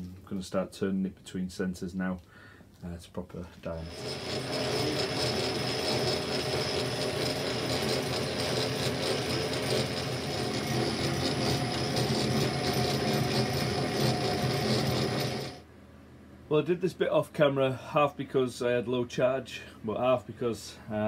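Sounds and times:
cutting tool cutting steel: 3.8 - 15.6
metal lathe running: 3.8 - 15.6.

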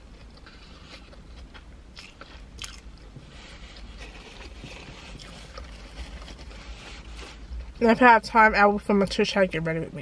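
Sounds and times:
person chewing food: 0.0 - 7.8
low steady rumble: 0.0 - 10.0.

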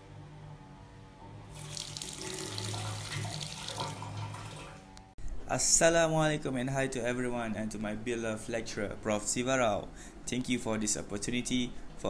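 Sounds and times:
quiet background music: 0.0 - 12.0
water running from a tap: 1.6 - 4.9.

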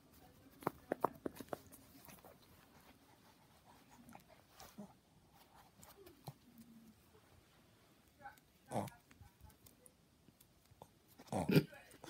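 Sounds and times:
dog mouthing a plush toy: 0.1 - 7.1.

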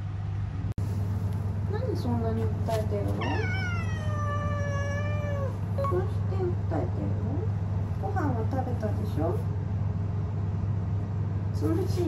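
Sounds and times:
cat meowing: 3.2 - 5.9.

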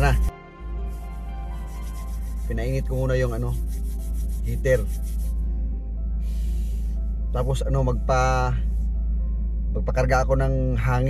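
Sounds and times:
hands rubbing together: 0.0 - 0.3, 0.9 - 5.4
background music: 0.0 - 11.0.

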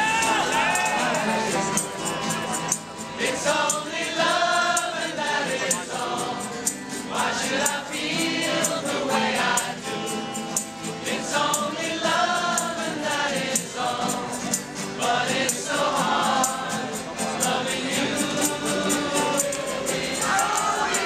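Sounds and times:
acoustic guitars: 0.0 - 21.0
crowd singing: 0.0 - 21.0
high shaking beat: 15.3 - 21.0.

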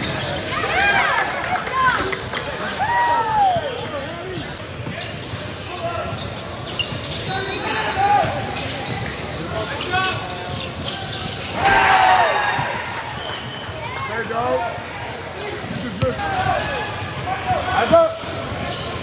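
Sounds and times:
sneakers squeaking: 0.0 - 1.4, 2.4 - 19.0
loud shout: 11.6 - 13.0
basketballs bouncing: 15.6 - 19.0.

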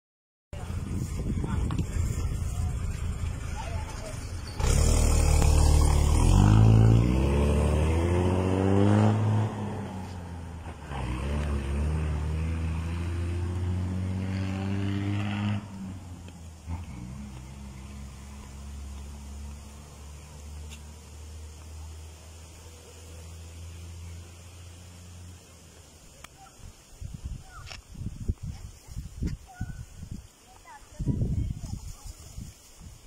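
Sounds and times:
diesel bus engine: 0.6 - 26.5.

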